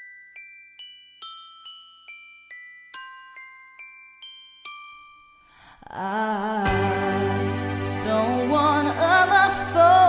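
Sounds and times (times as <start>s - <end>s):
bell-like struck notes: 0.0s - 5.6s.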